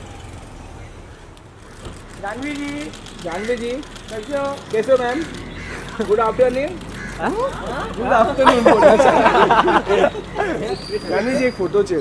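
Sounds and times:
car idling: 0.0 - 10.8.

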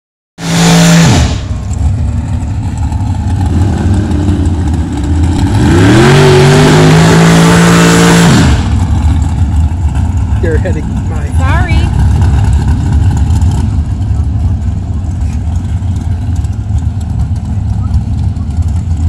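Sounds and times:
low rumble of engines: 0.4 - 19.0
racing car engine revving: 0.4 - 19.0.

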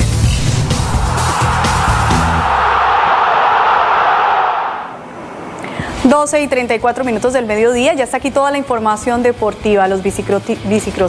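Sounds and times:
rushing noise swell: 0.0 - 6.6.

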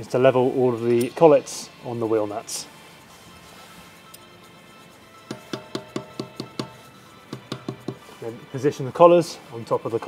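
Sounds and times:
mallet tapping metal: 5.2 - 8.0.

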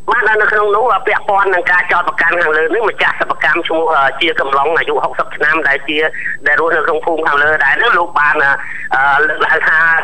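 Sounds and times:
person narrating news: 0.0 - 10.0.

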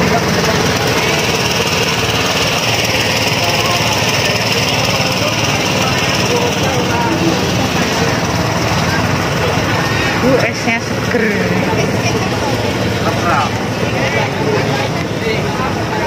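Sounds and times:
busy market noise: 0.0 - 16.0
crowd voices: 0.0 - 16.0.

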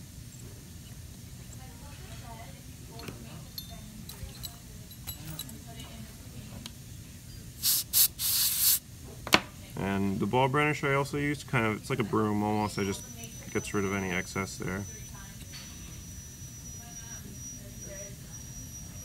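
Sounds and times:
air syringe blowing air: 7.6 - 8.8.

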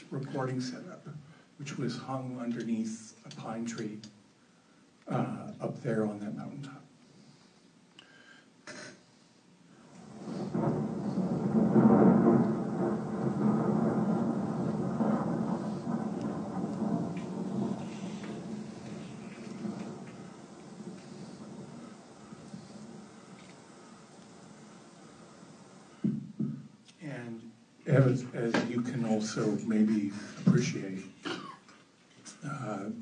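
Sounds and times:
rain: 0.0 - 8.3, 9.2 - 33.0
thunder rumbling: 9.7 - 31.5.

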